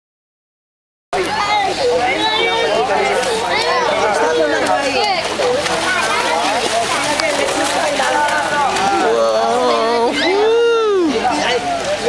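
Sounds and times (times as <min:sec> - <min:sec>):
children chattering and calling: 0:01.2 - 0:12.0
water splashing in a pool: 0:01.2 - 0:12.0.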